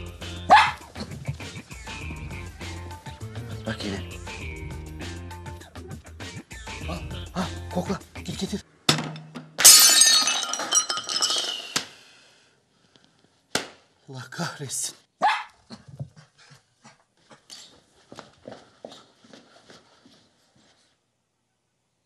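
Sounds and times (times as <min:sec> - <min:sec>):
small dog barking: 0:00.5 - 0:00.8, 0:15.2 - 0:15.8.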